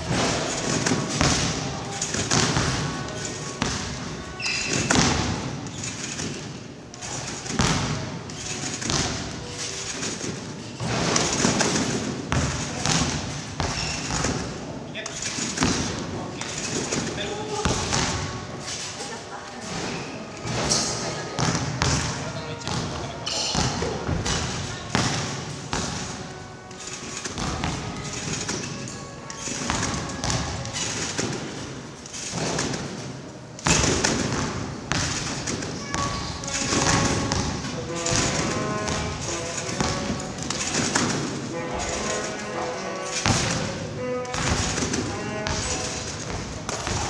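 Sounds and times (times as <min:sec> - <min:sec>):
voices in background: 0:00.0 - 0:33.3, 0:33.9 - 0:47.0
background music: 0:00.0 - 0:47.0
trampoline bed thumping: 0:29.4 - 0:33.0, 0:33.6 - 0:42.3, 0:43.1 - 0:47.0.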